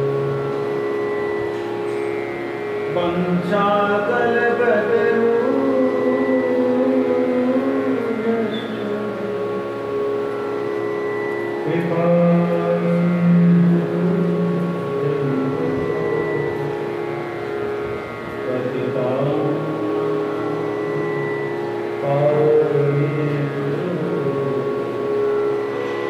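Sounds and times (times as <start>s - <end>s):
steady drone: 0.0s - 26.0s
devotional singing: 2.9s - 9.6s, 11.6s - 16.8s, 18.5s - 21.3s, 22.0s - 25.2s.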